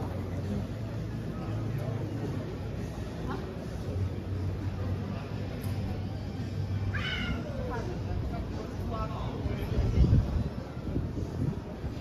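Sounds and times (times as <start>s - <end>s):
street low rumble: 0.0s - 12.0s.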